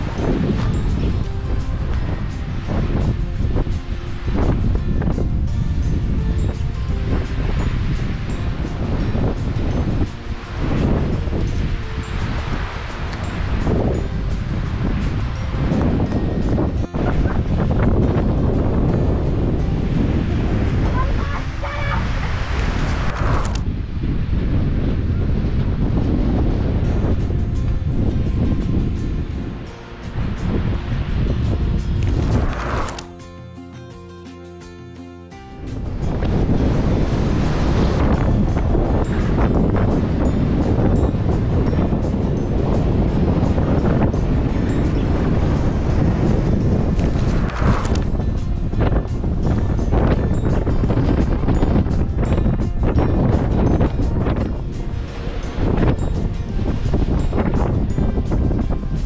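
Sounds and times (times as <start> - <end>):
music playing: 0.0 - 23.7, 26.5 - 59.0
wind buffeting microphone: 0.0 - 33.2, 35.5 - 59.0.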